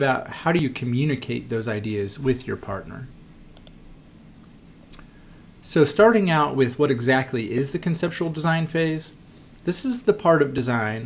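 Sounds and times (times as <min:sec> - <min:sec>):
computer key or mouse clicks: 0:03.5 - 0:03.8.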